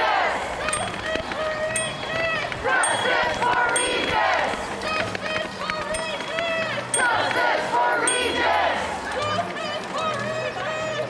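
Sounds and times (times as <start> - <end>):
crowd noise on street: 0.0 - 11.0
drawn-out shouts: 0.0 - 11.0
people calling out: 0.0 - 11.0.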